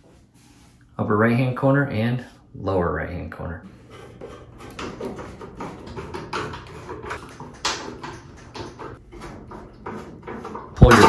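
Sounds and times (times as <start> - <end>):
screwdriver clicking and scraping metal: 3.8 - 11.0.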